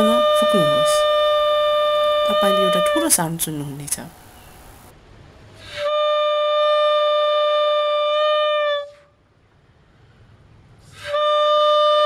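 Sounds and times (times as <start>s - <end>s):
balloon bugle trumpet-like note: 0.0s - 3.2s, 5.7s - 9.0s, 10.9s - 12.0s.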